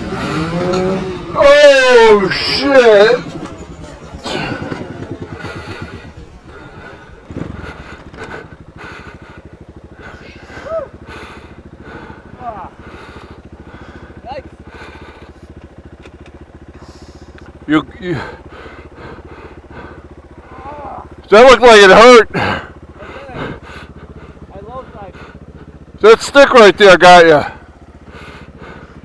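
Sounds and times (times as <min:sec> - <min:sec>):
dirt bike engine idling: 0:00.0 - 0:29.0.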